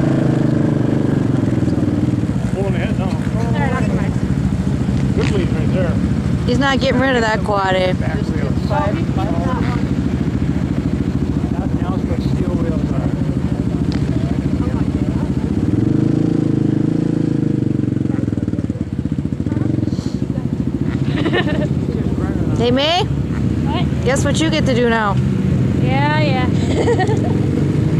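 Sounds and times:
quad engine running: 0:00.0 - 0:27.9.

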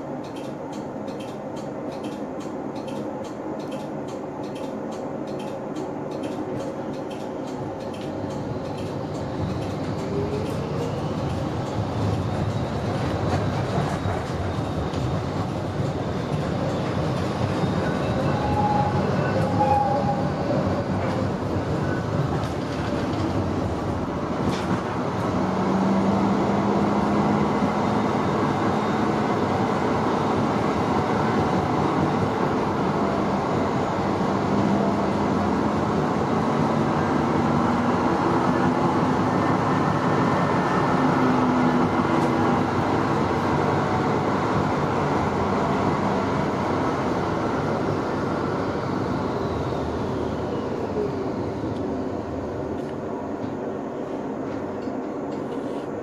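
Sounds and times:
tram wheels rumbling on rails: 0:00.0 - 0:56.0.

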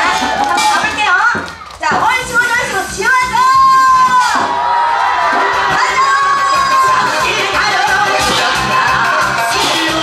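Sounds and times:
janggu drum beats: 0:00.0 - 0:10.0.

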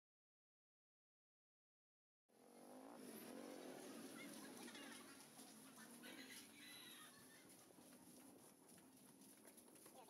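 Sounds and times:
small vehicle engine running: 0:02.3 - 0:10.0.

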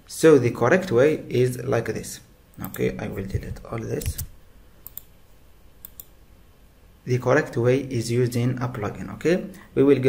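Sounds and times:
keyboard and mouse clicks: 0:02.6 - 0:05.1, 0:05.8 - 0:06.1.

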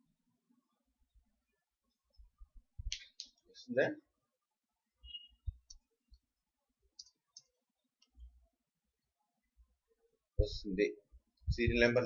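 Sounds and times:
faint computer clicks: 0:06.9 - 0:08.2.

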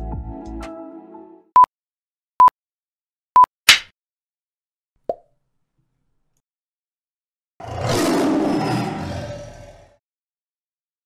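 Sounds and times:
lion roar: 0:07.6 - 0:10.0.

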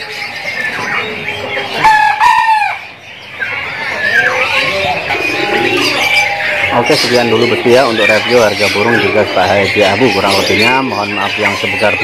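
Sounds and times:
caged birds calling: 0:00.0 - 0:12.0.

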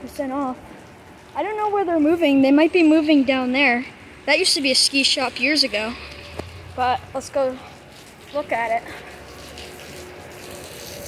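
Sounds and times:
rain on wet pavement: 0:00.0 - 0:02.6, 0:04.0 - 0:11.0.

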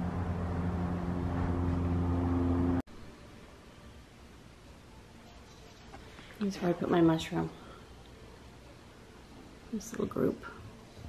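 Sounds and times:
engine drone: 0:00.0 - 0:02.8.

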